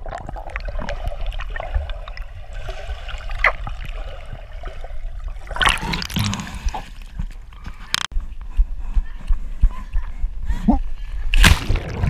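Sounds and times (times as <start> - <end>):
water splash: 11.4 - 12.0.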